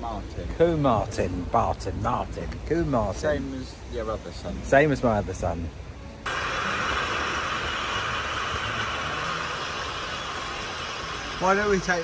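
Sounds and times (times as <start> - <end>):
fast-flowing water rushing: 6.3 - 12.0.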